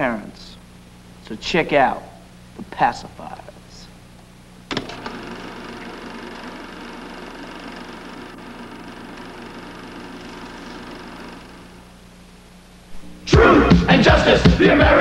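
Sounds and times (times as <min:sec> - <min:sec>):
low steady hum: 0:00.0 - 0:07.2, 0:08.0 - 0:15.0
mechanical whirring buzz: 0:04.0 - 0:14.4.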